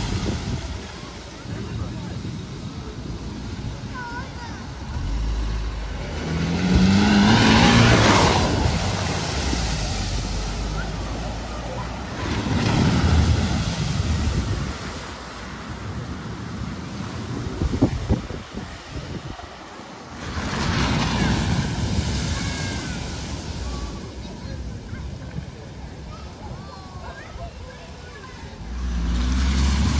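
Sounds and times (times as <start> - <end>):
rushing floodwater: 0.0 - 29.9
wheels spraying water: 0.0 - 29.9
car engine revving: 4.8 - 13.4, 28.7 - 29.9.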